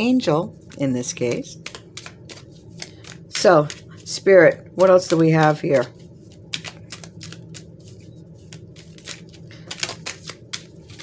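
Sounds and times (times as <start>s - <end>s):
cards being shuffled: 0.6s - 11.0s.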